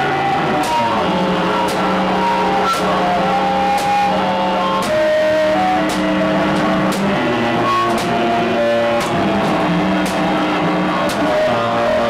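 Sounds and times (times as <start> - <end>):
synthesizer drones: 0.0 - 12.0.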